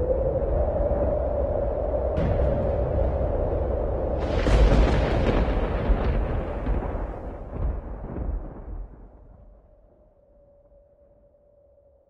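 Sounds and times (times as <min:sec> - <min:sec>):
explosion with deep rumble: 0:02.2 - 0:09.6.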